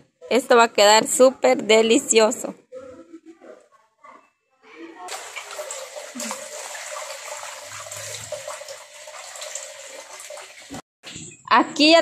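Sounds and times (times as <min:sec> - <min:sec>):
tap water running into bowl: 0:05.1 - 0:10.8.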